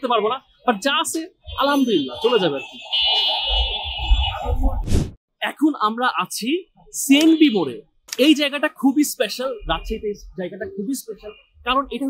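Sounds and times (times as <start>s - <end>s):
high-pitched electronic buzzing tone: 1.5s - 4.8s
short sharp whoosh: 3.2s - 5.2s.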